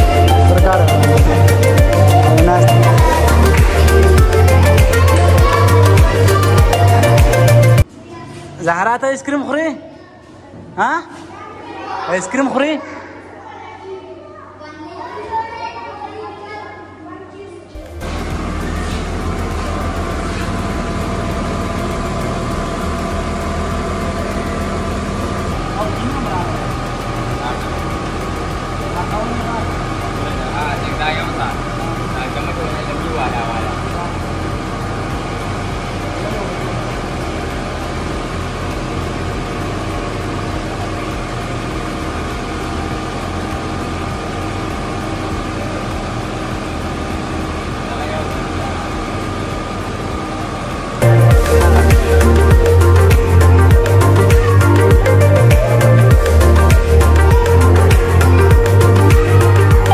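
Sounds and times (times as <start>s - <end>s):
electric motor hum with whine: 0.0s - 7.8s, 17.8s - 59.9s.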